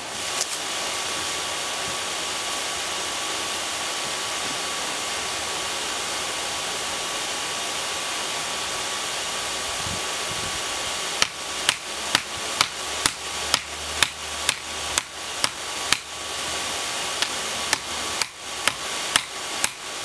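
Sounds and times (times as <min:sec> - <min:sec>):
hair dryer hissing: 0:08.0 - 0:20.0.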